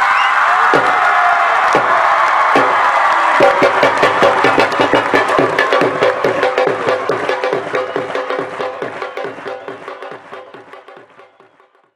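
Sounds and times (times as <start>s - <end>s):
crowd noise: 0.0s - 11.9s
drumming: 0.5s - 11.9s.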